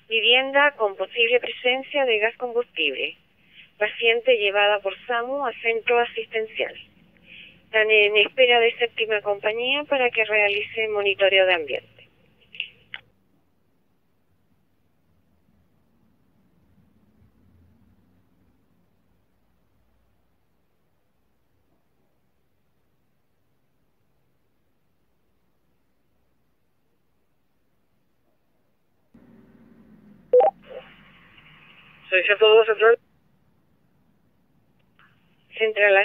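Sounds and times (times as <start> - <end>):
faint hum: 0.0 - 36.0
two-note radio beep: 30.4 - 30.8.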